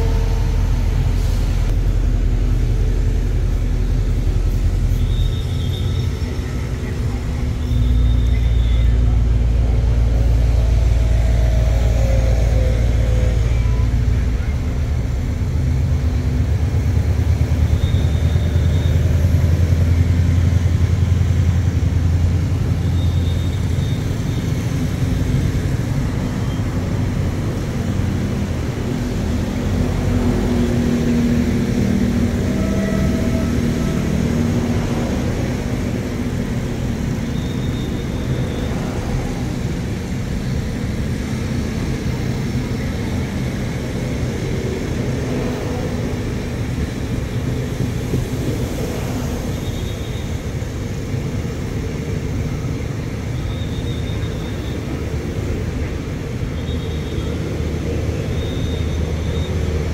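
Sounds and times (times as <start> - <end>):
train rumbling past: 0.0 - 59.9.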